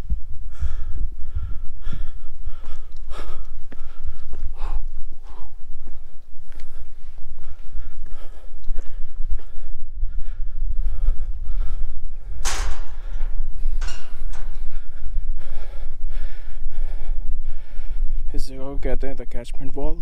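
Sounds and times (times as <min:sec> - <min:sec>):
man breathing while walking: 0:00.0 - 0:18.8
wind buffeting microphone: 0:00.0 - 0:20.0.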